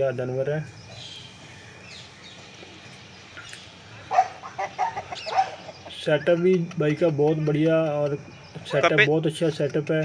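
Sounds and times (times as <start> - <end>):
quiet yard background: 0.0 - 10.0.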